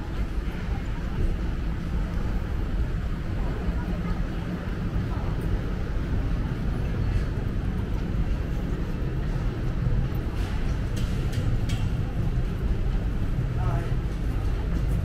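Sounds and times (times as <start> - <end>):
city street rumble: 0.0 - 15.0.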